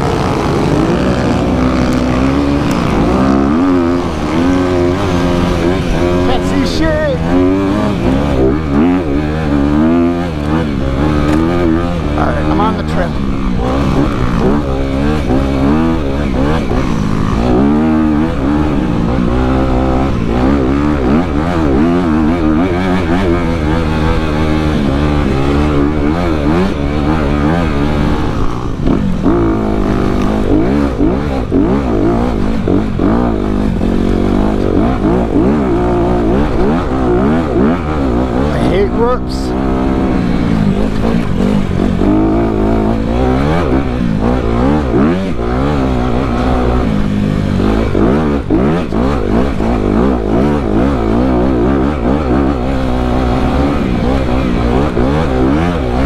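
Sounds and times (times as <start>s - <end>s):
dirt bike engine revving: 0.0s - 56.0s.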